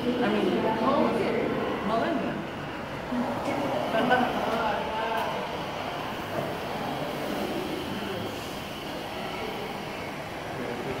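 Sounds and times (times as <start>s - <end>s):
steady ambient hum: 0.0s - 11.0s.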